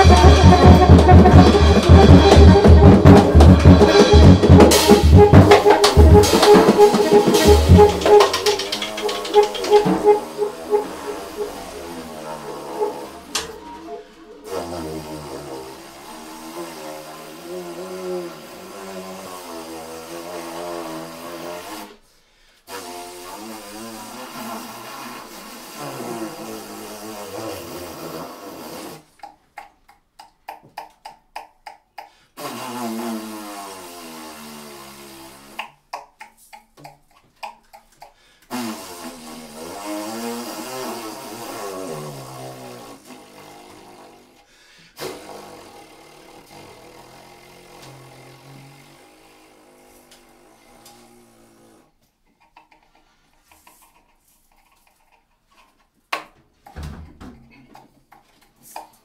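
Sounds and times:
drums: 0.0s - 14.0s
saxophone playing: 0.0s - 21.9s, 22.7s - 29.0s, 38.5s - 44.4s, 45.0s - 51.8s.

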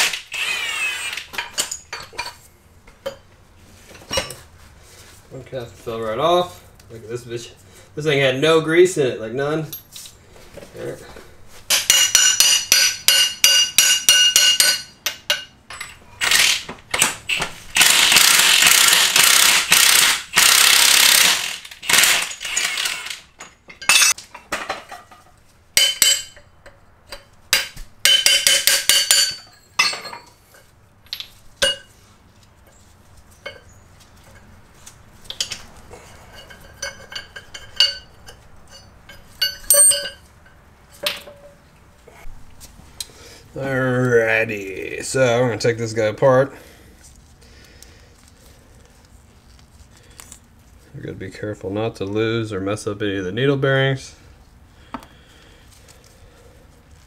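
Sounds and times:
light metal clinks: 35.3s - 40.6s.

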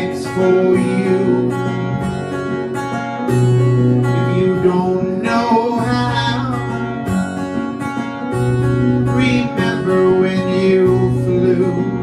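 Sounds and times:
man singing: 0.0s - 1.9s, 4.0s - 7.1s, 8.9s - 12.0s
acoustic guitar strumming: 0.0s - 12.0s.

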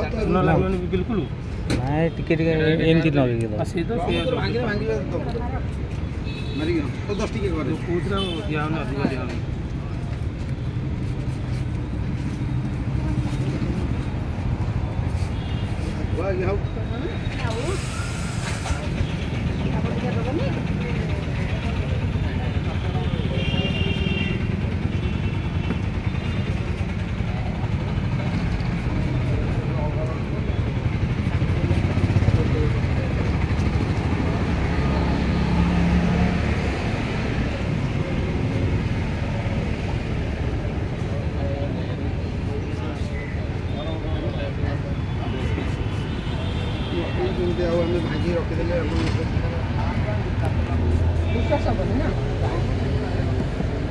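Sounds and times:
people talking: 0.0s - 5.7s, 16.1s - 24.8s, 41.0s - 53.9s
motorbike engines: 0.0s - 53.9s
passing traffic rumble: 0.0s - 53.9s.

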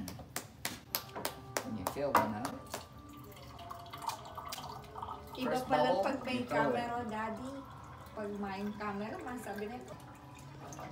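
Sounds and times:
person clapping hands: 0.0s - 3.0s.

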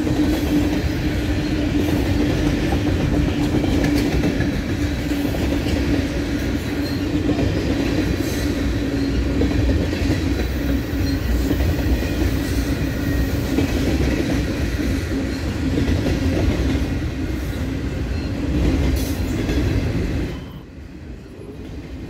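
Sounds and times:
freight train wheels rumbling: 0.0s - 22.0s.

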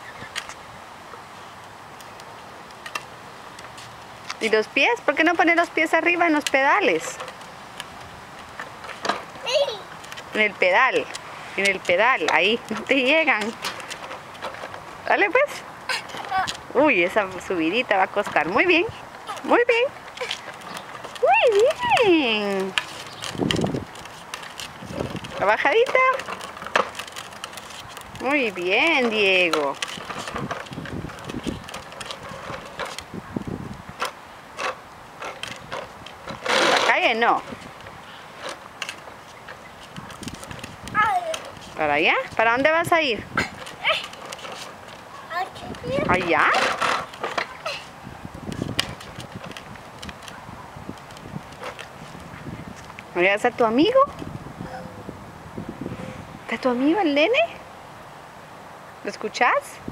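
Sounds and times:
plastic wheels rolling on concrete: 0.1s - 54.6s.

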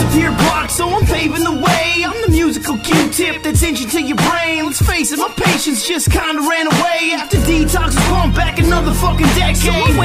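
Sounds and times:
deep bass kicks: 0.0s - 5.0s
rapping over a beat: 0.0s - 10.0s.

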